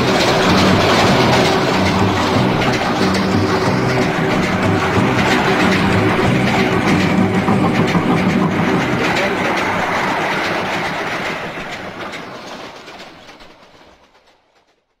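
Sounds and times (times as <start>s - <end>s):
train wheels clattering on rails: 0.0s - 15.0s.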